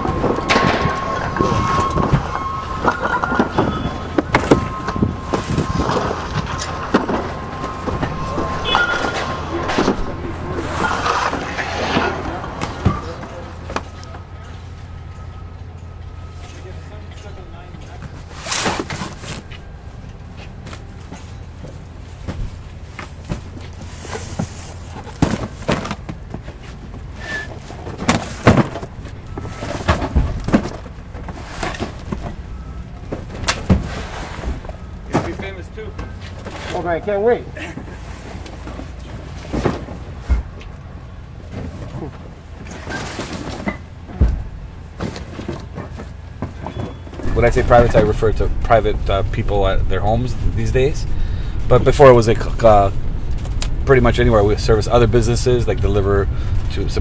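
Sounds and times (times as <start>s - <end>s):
steady low hum: 0.0s - 18.4s, 47.2s - 57.0s.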